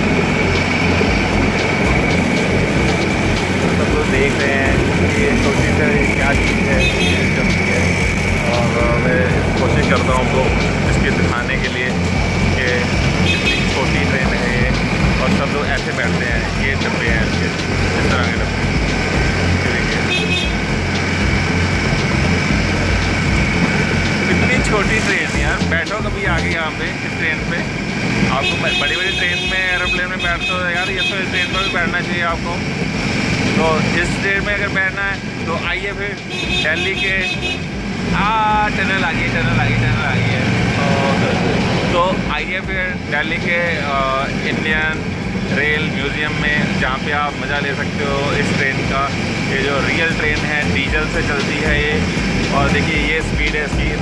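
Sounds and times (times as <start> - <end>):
high whine: 0.0 - 54.0
miniature train rumbling on track: 0.0 - 54.0
man calling out: 3.6 - 18.5, 28.4 - 32.5, 35.5 - 37.6, 49.7 - 54.0.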